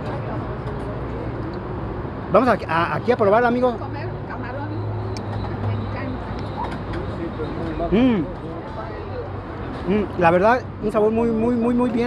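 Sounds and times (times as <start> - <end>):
traffic: 0.0 - 12.0.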